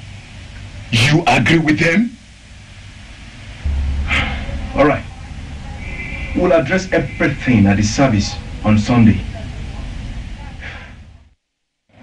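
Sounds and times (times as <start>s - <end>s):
steady background hiss: 0.0s - 12.0s
steady low hum: 0.0s - 12.0s.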